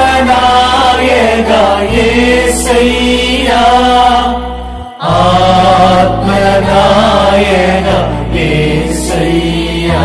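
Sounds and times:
person singing a hymn: 0.0s - 10.0s.

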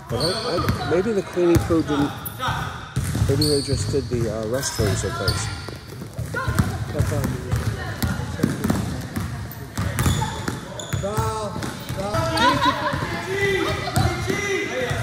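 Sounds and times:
basketball bouncing on gym floor: 0.1s - 15.0s
players calling out: 9.6s - 15.0s.

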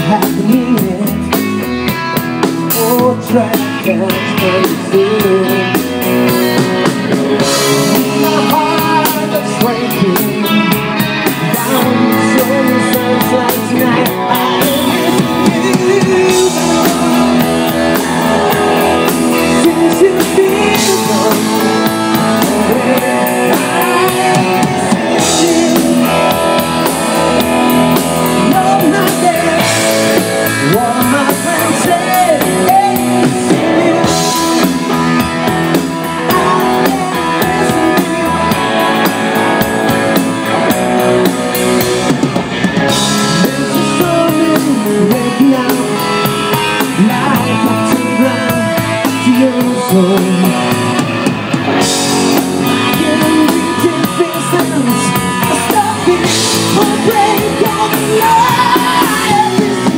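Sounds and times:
man singing into microphone: 0.0s - 6.4s, 7.4s - 39.2s, 42.9s - 51.1s, 52.3s - 59.9s
distorted electric guitars: 0.0s - 59.9s
drum kit: 0.0s - 59.9s.

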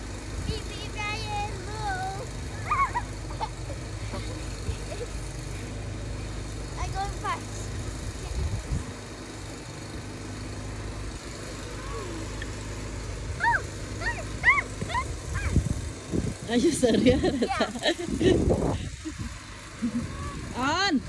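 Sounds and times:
children calling: 0.6s - 5.5s, 11.4s - 15.8s, 19.3s - 20.8s.

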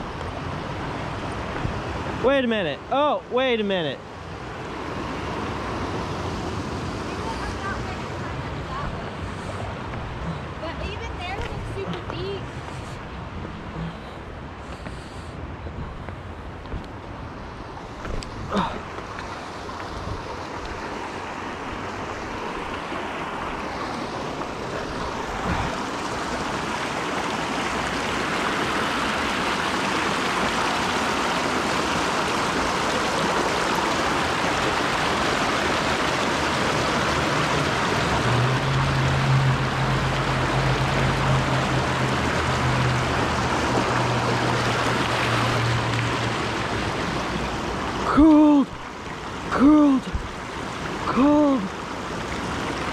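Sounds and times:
water rushing over rocks: 0.0s - 52.9s.

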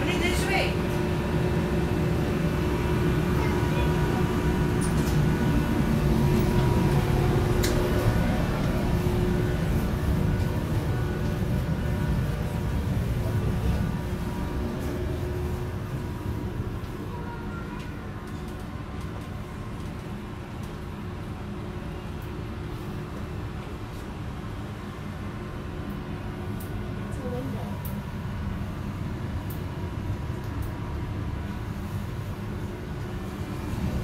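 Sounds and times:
ventilation blower humming: 0.0s - 34.0s.

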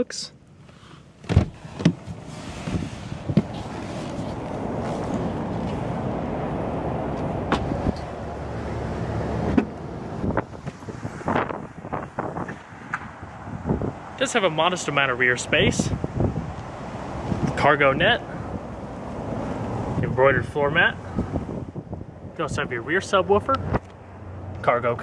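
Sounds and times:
handling noise: 0.6s - 6.0s
car door and tailgate clicks: 1.2s - 3.6s
wind rushing over microphone: 1.9s - 23.9s.

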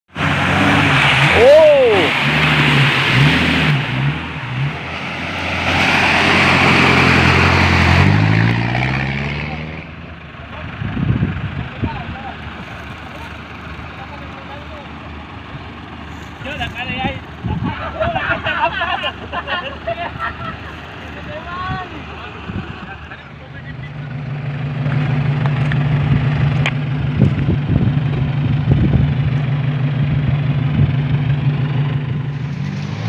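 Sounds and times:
tyres churning through mud: 0.1s - 10.9s, 11.7s - 33.0s
off-road engine revving: 0.1s - 33.0s.

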